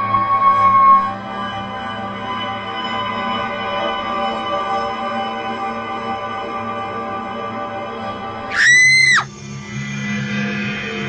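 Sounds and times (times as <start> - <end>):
background music sustained tones: 0.0 - 8.5
high-pitched scream: 8.5 - 9.3.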